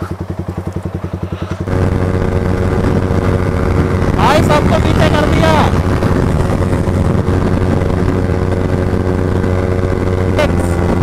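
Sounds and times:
motorcycle engine drone: 0.0s - 11.0s
motorcycle engines idling: 0.0s - 11.0s
wind rush: 1.6s - 11.0s.

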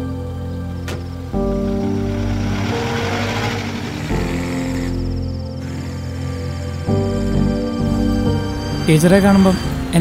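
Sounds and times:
soft background music: 0.0s - 10.0s
car pulling away: 0.8s - 7.3s.

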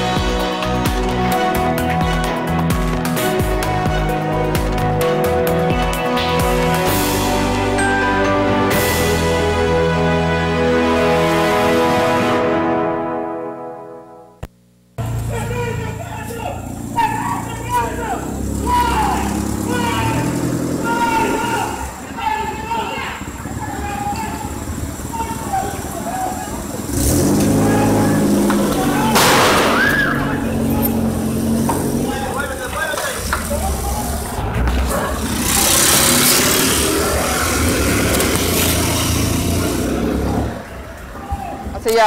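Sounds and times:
car engines running: 15.0s - 42.0s
indistinct voices: 15.1s - 42.0s
loud rushing noise: 26.8s - 32.4s, 34.0s - 40.9s.

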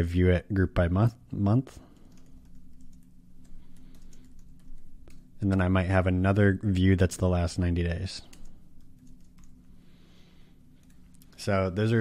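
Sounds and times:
faint steady low hum: 0.0s - 12.0s
computer keyboard typing: 1.9s - 5.3s, 8.2s - 9.7s, 10.8s - 11.4s.

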